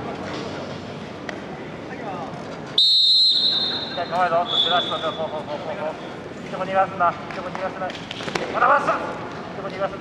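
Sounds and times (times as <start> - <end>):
referee's whistle blast: 2.8 - 5.2.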